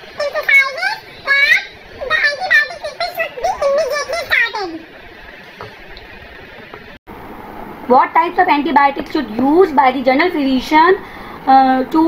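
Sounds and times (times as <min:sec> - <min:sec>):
high child-like voice: 0:00.0 - 0:04.9.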